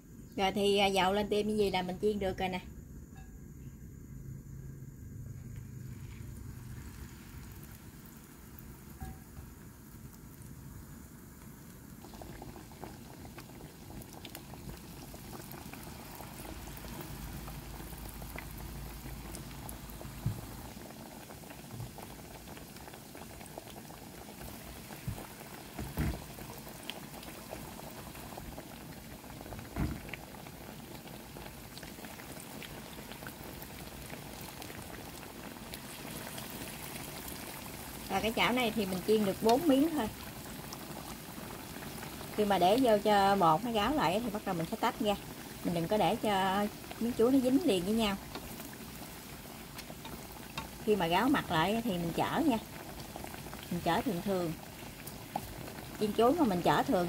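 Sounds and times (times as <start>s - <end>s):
food deep-frying in oil: 0.1s - 57.0s.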